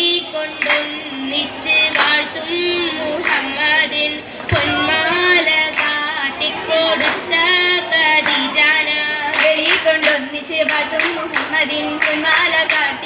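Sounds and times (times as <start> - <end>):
girls singing in unison: 0.0 - 13.0
hand claps: 0.6 - 0.9, 1.9 - 2.2, 3.2 - 3.4, 5.6 - 6.0, 7.0 - 7.3, 8.2 - 8.5, 9.3 - 13.0.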